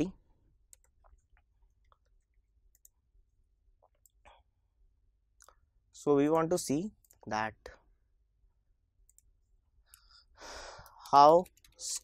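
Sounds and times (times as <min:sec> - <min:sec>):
computer clicks: 0:00.7 - 0:01.2, 0:02.7 - 0:03.0, 0:09.1 - 0:09.3.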